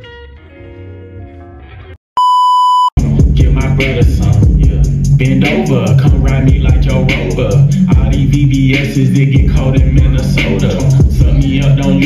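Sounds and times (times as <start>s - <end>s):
test-tone beep: 2.2s - 3.0s
hip hop music with rapping: 3.0s - 12.0s.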